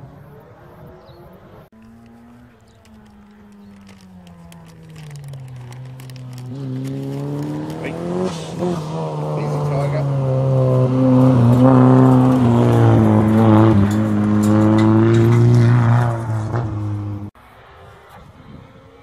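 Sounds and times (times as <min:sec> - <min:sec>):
rally car engine revving: 0:01.8 - 0:19.0.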